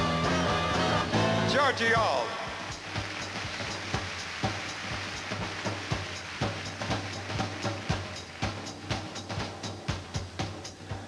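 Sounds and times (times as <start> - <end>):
pounding tom-tom beat: 0.0 - 11.0.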